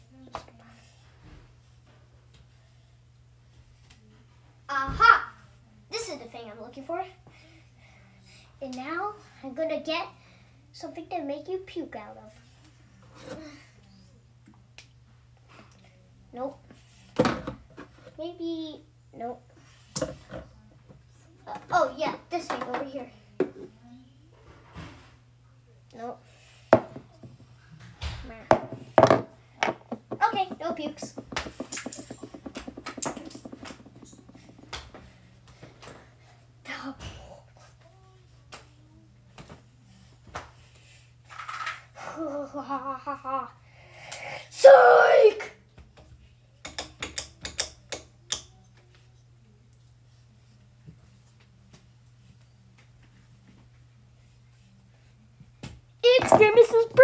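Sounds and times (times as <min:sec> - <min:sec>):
child's voice: 0:04.7 - 0:07.2, 0:44.6 - 0:45.5, 0:56.0 - 0:57.0
objects knocking and clattering: 0:28.5 - 0:35.1, 0:56.1 - 0:57.0.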